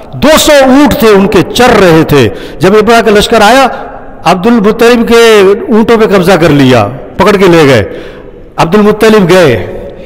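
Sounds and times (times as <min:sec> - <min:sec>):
man preaching: 0:00.0 - 0:10.0.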